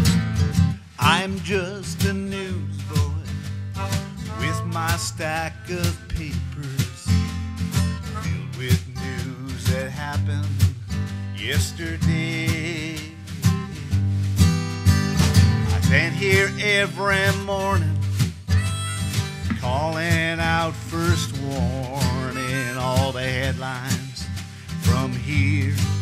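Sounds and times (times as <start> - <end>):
strummed acoustic guitar: 0.0 - 26.0
harmonica melody: 3.7 - 6.1, 7.8 - 8.8, 18.5 - 25.1.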